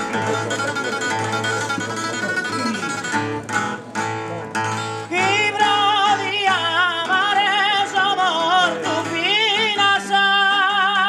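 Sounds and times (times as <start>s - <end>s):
acoustic guitar strumming chords: 0.0s - 11.0s
man singing with quavering trill: 0.0s - 11.0s.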